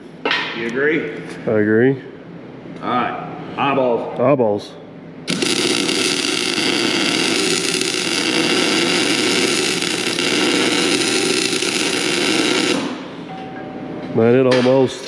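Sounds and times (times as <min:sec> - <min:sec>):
electric welding arc: 0:05.3 - 0:13.2.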